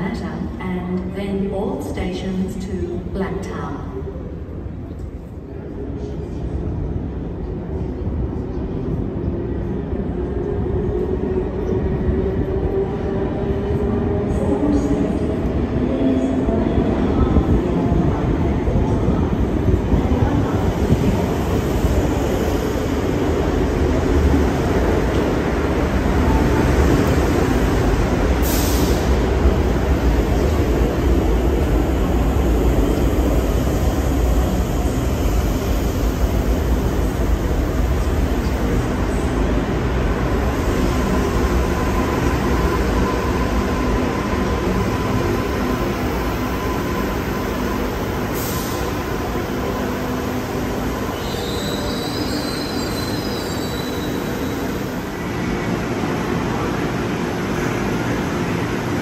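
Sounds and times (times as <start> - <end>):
falling whine of train: 3.9 - 59.0
train rumble: 4.1 - 59.0.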